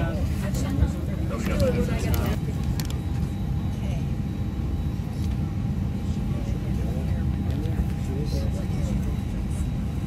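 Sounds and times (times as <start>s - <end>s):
airliner cabin rumble: 0.0s - 10.0s
faint voices: 0.0s - 10.0s.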